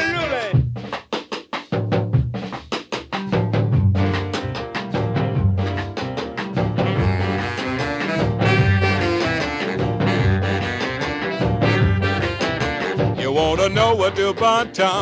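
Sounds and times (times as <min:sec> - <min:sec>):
rhythm and blues band playing: 0:00.0 - 0:15.0
sharp drum hits: 0:03.4 - 0:13.3.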